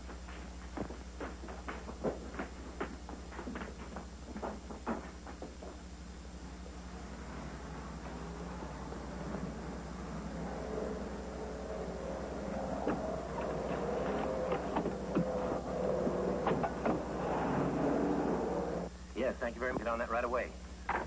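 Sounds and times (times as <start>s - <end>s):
car engine running: 6.2s - 18.9s.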